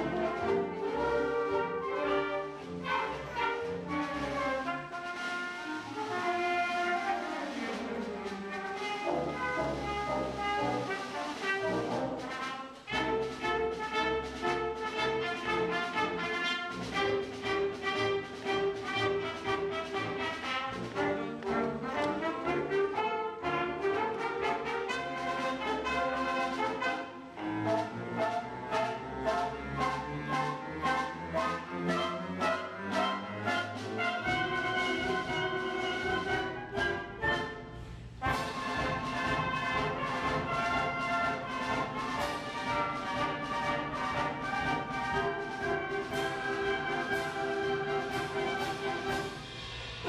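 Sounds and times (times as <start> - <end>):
concert wind band playing: 0.0 - 50.0.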